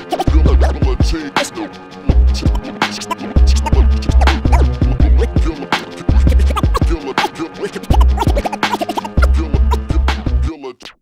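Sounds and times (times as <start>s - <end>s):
turntable scratching: 0.0s - 0.9s, 2.4s - 10.0s
hip-hop beat with heavy bass: 0.0s - 10.8s.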